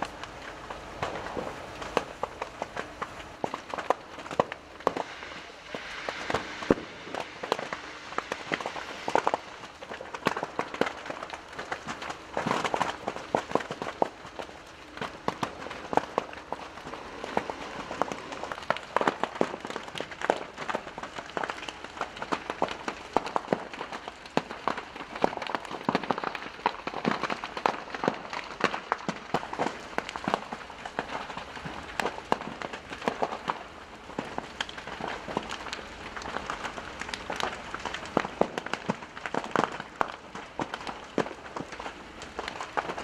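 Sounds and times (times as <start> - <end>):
building fire crackling: 0.0 - 43.0
sharp pops and snaps: 0.0 - 43.0.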